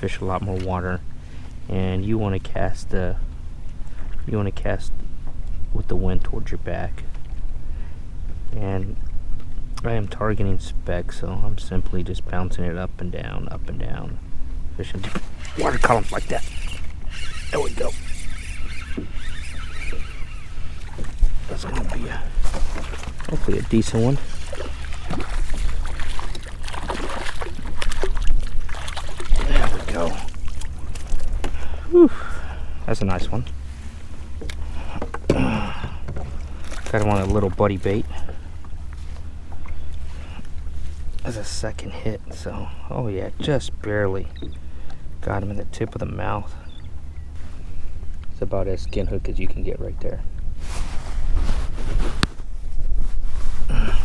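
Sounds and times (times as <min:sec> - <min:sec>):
fish splashing in water: 0:24.2 - 0:31.3
wind rumble on microphone: 0:47.4 - 0:54.0.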